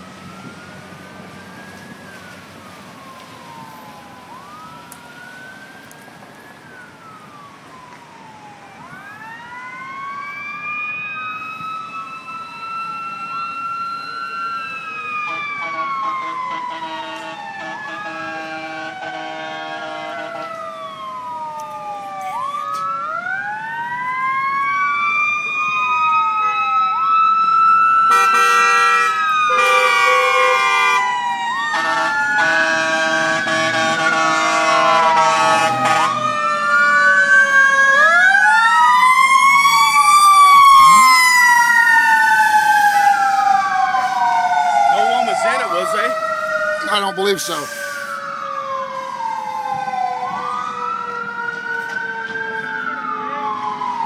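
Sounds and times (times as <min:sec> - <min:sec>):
fire engine sirens wailing: 0:00.0 - 0:54.0
horn blasts: 0:15.3 - 0:20.5, 0:28.1 - 0:31.0, 0:31.8 - 0:36.3.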